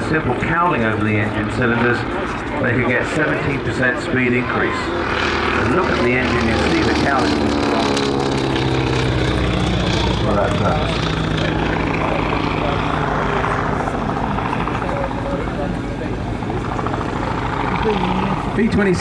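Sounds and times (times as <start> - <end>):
propeller plane flying past: 0.0 - 19.0.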